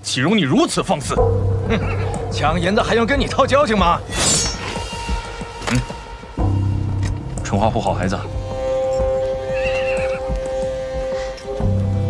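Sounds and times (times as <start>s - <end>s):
film score sustained note: 0.9s - 12.0s
horse whinnying: 9.0s - 10.5s.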